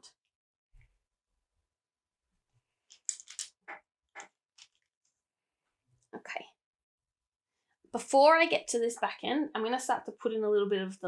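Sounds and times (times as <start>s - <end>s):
pastel pencils scraping and rustling: 2.8s - 5.2s.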